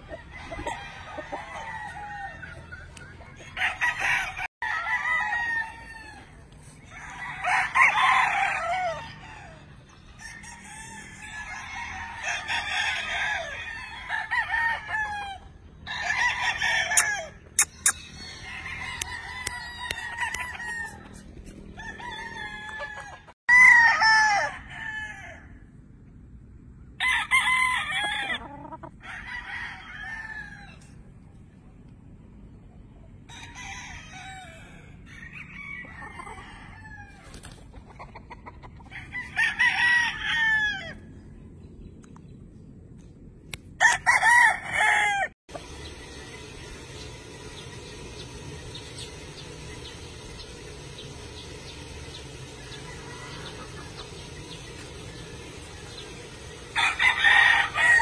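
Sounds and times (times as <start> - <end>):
roosters crowing: 0.0 - 25.9, 26.9 - 31.1, 33.3 - 41.4, 43.8 - 58.0.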